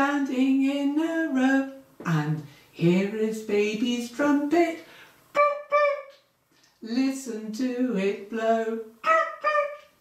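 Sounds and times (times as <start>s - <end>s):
high toot notes through hands: 5.4s - 6.1s.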